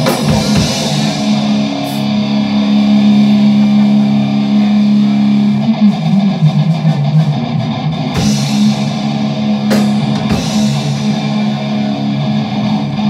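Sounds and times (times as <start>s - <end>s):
electric guitar chord ringing: 0.0s - 13.0s
short repeated guitar notes: 0.0s - 13.0s.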